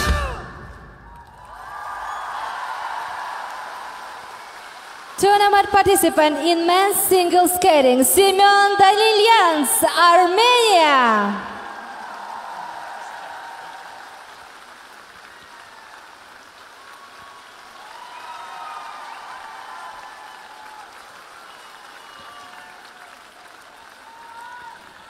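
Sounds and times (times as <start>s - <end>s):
crowd applauding: 0.0s - 7.1s, 10.5s - 25.0s.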